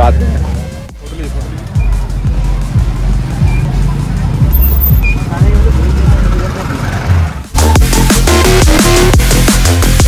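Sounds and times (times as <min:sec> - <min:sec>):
people chattering: 0:00.0 - 0:07.1
bass-heavy dance music: 0:00.0 - 0:10.0.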